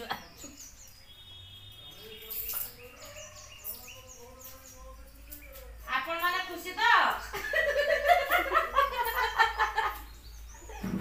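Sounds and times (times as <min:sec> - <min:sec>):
faint bird chirps: 0:00.0 - 0:07.8, 0:08.8 - 0:11.0.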